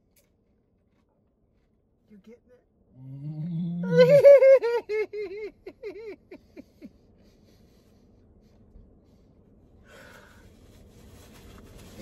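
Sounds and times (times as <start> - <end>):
man laughing hard: 3.8 - 6.9.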